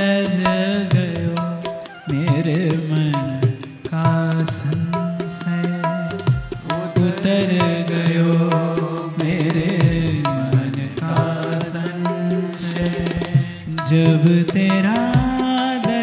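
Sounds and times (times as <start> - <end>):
man singing into a microphone: 0.0 - 16.0
percussion beat: 0.0 - 16.0.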